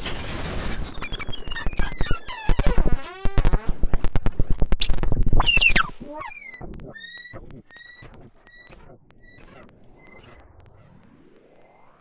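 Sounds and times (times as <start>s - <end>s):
short synth chirps: 4.8s - 10.4s
synth tone sweeping downward: 4.8s - 12.0s.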